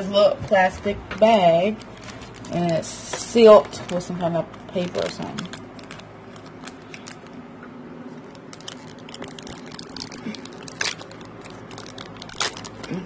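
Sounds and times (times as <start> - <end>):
plastic bag crinkling: 0.5 - 13.0.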